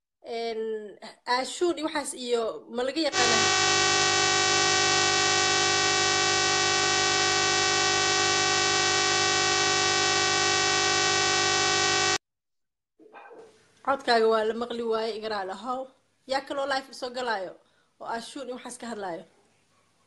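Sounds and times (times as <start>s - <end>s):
steady buzzing tone: 3.1s - 12.2s.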